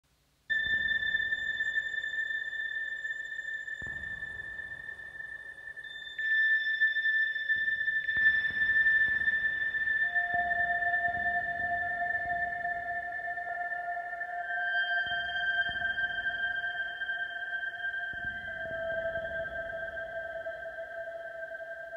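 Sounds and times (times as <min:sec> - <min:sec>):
high sustained synth tone: 0:00.5 - 0:21.9.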